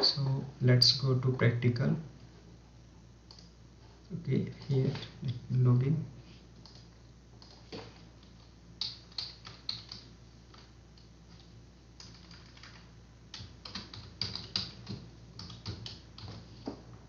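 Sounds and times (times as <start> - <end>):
computer keyboard keystrokes: 6.6 - 16.4.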